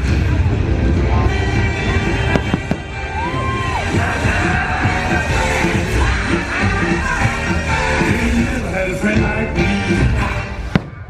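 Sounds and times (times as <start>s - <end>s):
music playing: 0.0s - 11.0s
fireworks bursting: 2.2s - 3.3s, 10.6s - 11.0s.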